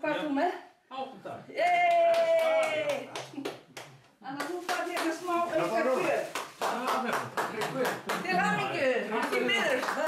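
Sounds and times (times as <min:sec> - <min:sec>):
lively talk: 0:00.0 - 0:10.0
people clapping: 0:01.6 - 0:10.0.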